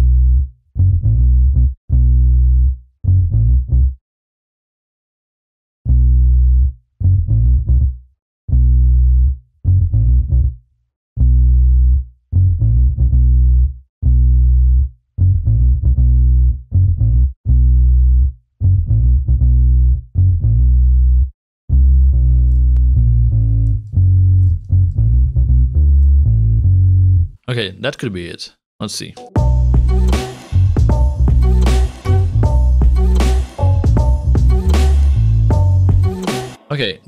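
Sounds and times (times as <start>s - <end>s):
electric bass playing bassline: 0.0s - 4.0s, 5.9s - 10.6s, 11.2s - 27.4s, 29.4s - 36.6s.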